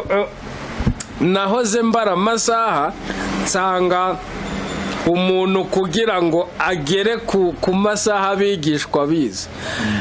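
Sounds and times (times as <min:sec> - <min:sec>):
man speaking: 0:00.0 - 0:00.4, 0:05.0 - 0:10.0
passing road vehicle: 0:02.4 - 0:07.7.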